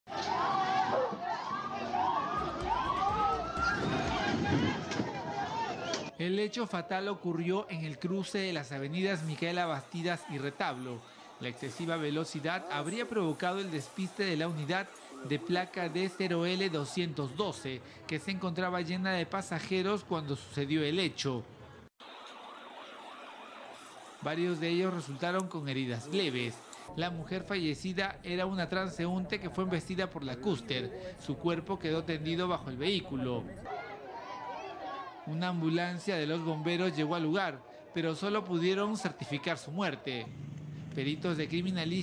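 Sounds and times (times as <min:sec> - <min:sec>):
crowd voices: 0:00.1 - 0:06.1, 0:09.0 - 0:20.8, 0:28.8 - 0:40.3
emergency vehicle siren wailing: 0:00.2 - 0:06.1, 0:09.1 - 0:17.2, 0:22.0 - 0:26.9.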